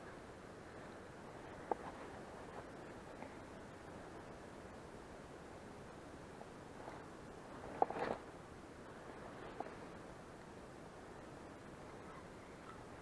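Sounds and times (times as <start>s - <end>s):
faint outdoor ambience: 0.0s - 13.0s.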